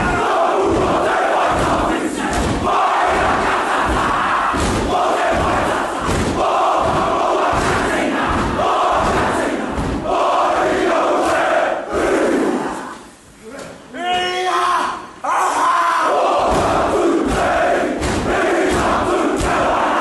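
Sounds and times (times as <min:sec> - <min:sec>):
stamping and slapping thumps: 0:00.7 - 0:10.1, 0:16.5 - 0:19.8.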